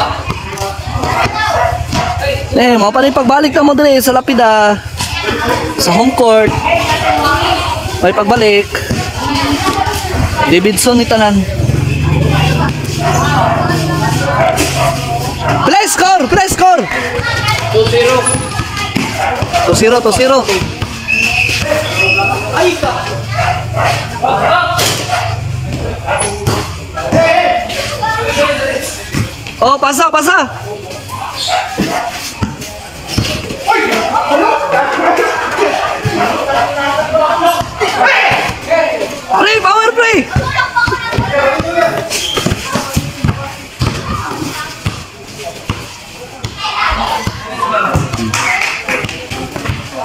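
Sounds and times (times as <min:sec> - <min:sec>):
basketball bouncing on concrete: 0:00.0 - 0:02.2, 0:06.4 - 0:06.9, 0:08.2 - 0:13.6, 0:16.5 - 0:27.6, 0:31.7 - 0:34.0, 0:40.1 - 0:50.0
players calling out: 0:00.0 - 0:50.0.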